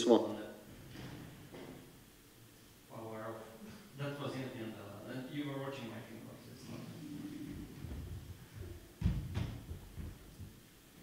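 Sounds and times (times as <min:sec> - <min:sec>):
microphone handling thumps: 0:06.6 - 0:10.6.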